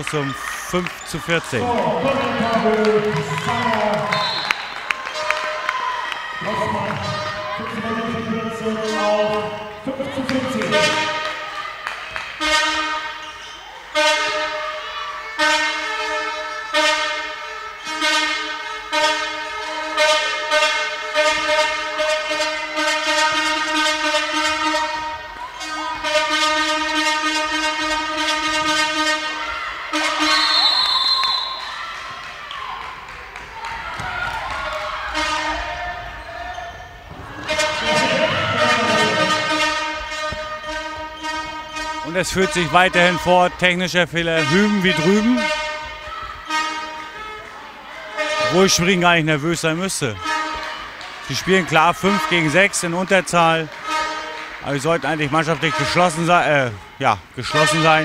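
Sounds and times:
crowd noise: 0.0s - 58.0s
horn blowing long notes: 1.5s - 5.5s, 12.4s - 13.3s, 13.9s - 31.8s, 35.0s - 36.1s, 37.4s - 56.7s, 57.4s - 58.0s
short high whistle: 30.2s - 31.7s.

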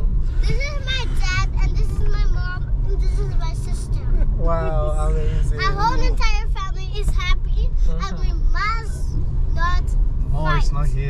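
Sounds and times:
road rumble inside car: 0.0s - 11.0s.

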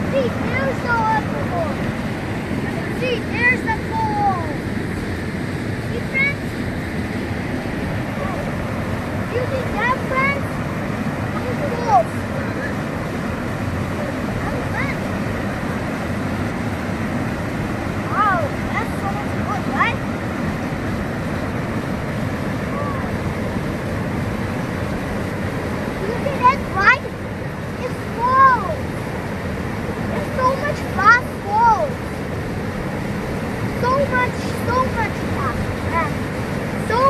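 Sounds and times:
water rushing over rocks: 0.0s - 37.0s.

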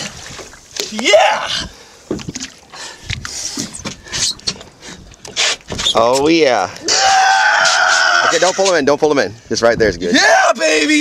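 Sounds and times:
water splashing: 0.0s - 7.0s.

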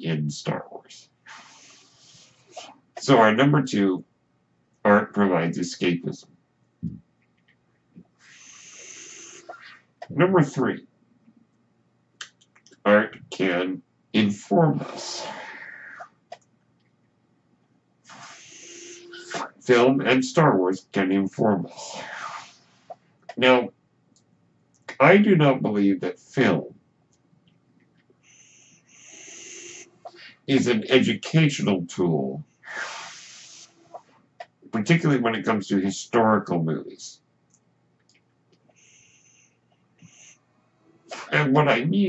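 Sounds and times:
person talking: 0.0s - 1.7s, 2.6s - 4.0s, 4.9s - 6.2s, 10.0s - 10.8s, 12.7s - 15.6s, 19.3s - 22.1s, 23.3s - 23.7s, 24.8s - 26.7s, 30.1s - 32.4s, 34.7s - 37.2s, 41.1s - 42.0s
mechanical ventilator hissing: 1.2s - 3.2s, 8.2s - 9.8s, 14.5s - 16.1s, 18.0s - 20.5s, 21.6s - 22.9s, 28.2s - 31.5s, 32.6s - 34.1s.

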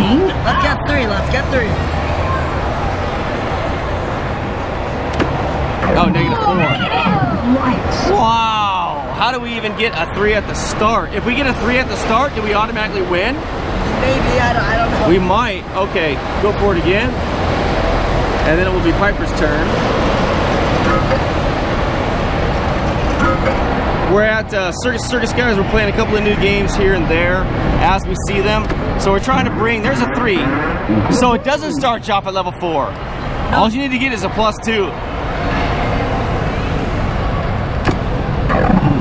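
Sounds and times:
arcade hall noise: 0.0s - 39.0s
low hum: 29.0s - 32.0s, 37.9s - 39.0s.

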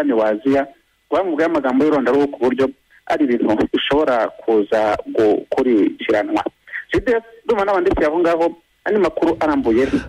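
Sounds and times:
person talking over radio: 6.1s - 7.2s, 9.2s - 10.0s.

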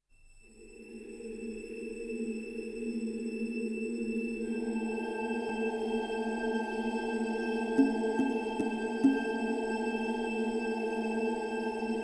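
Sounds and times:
orchestral film music: 7.8s - 9.9s.

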